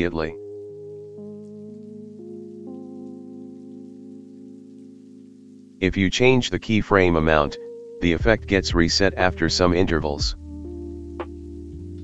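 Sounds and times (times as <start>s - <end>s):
soft music of sustained chords: 0.0s - 5.9s, 6.9s - 12.0s.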